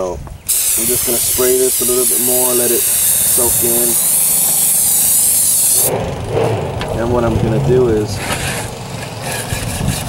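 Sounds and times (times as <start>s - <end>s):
aerosol spray can hissing: 0.5s - 5.9s.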